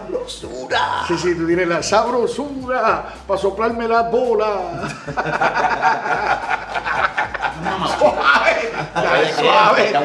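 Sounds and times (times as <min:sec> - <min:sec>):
overlapping talk: 0:03.6 - 0:10.0
men chuckling: 0:04.8 - 0:10.0.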